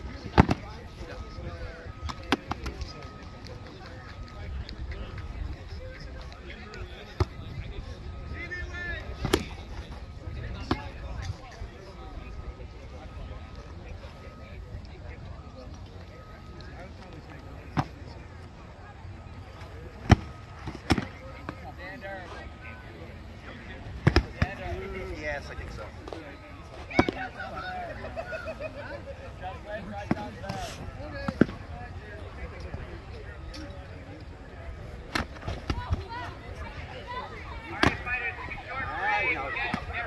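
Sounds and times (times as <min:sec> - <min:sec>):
voices talking: 0:00.0 - 0:40.0.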